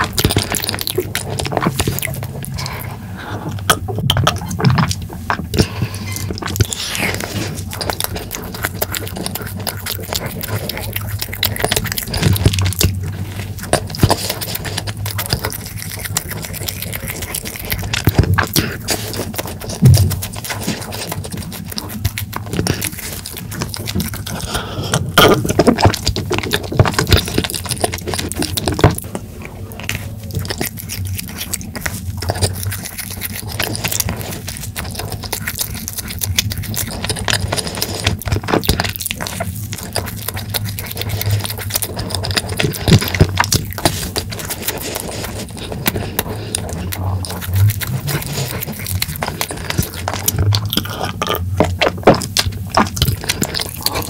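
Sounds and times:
close-miked chewing: 0:00.0 - 0:54.0
low steady hum: 0:00.0 - 0:54.0
sticky mouth clicks and smacks: 0:00.0 - 0:54.0
wet mouth clicks and smacks: 0:45.4 - 0:54.0.

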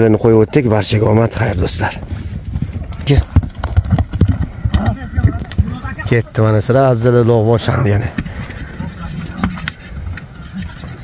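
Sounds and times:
horse hooves thudding on dirt: 0:01.2 - 0:11.0
voices: 0:04.6 - 0:11.0.

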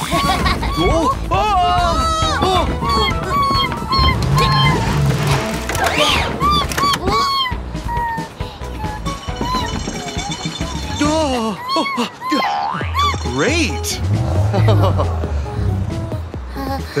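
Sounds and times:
cartoon background music: 0:00.0 - 0:17.0.

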